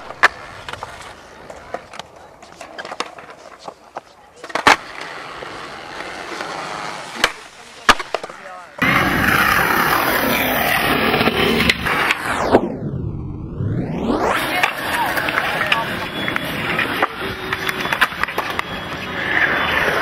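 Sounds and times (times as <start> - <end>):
skateboard clacks: 0.0 - 8.5, 14.4 - 20.0
skateboard wheels rolling on concrete: 0.0 - 20.0
swooping sweep: 8.8 - 17.6.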